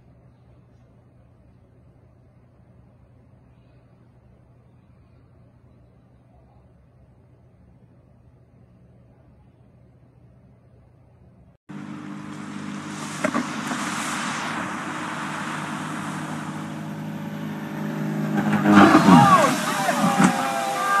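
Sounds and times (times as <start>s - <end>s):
propeller plane engine running: 11.7s - 21.0s
people shouting: 15.8s - 21.0s.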